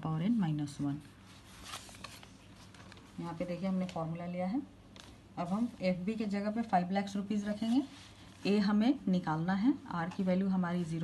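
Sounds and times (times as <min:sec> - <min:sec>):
notebook pages turning: 0:01.6 - 0:03.1.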